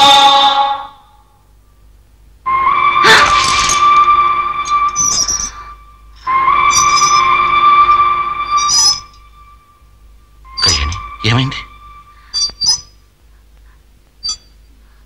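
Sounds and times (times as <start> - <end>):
train whistle blasts: 2.5 - 12.3.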